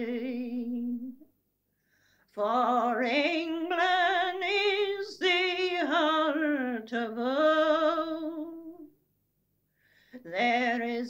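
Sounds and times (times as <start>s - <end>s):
elderly woman singing: 0.0s - 1.2s, 2.3s - 8.9s, 10.2s - 11.0s
faint breath: 1.6s - 2.3s, 9.6s - 10.3s.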